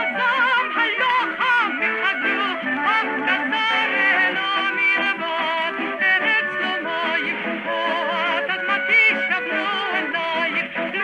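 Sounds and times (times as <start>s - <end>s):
folk dance orchestra playing: 0.0s - 11.0s.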